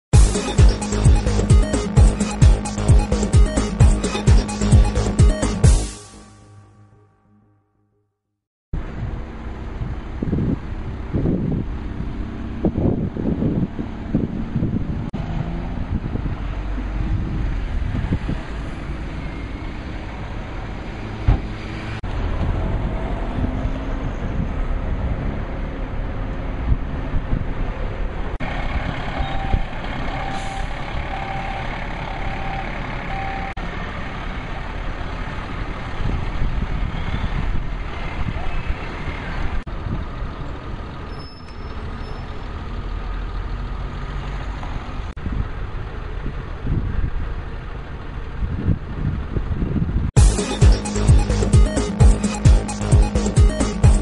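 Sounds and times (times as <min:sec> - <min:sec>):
street traffic: 0:00.1 - 0:07.3, 0:08.8 - 0:54.0
reversing alarm beeping: 0:29.1 - 0:33.6.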